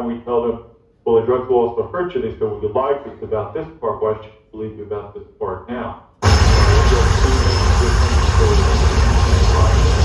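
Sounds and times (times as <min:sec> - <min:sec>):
harsh noise wall: 0:06.2 - 0:10.0.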